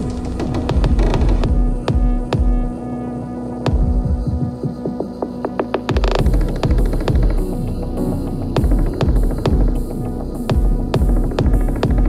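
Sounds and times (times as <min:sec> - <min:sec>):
industrial electronic music: 0:00.0 - 0:12.0
low droning hum: 0:00.0 - 0:12.0.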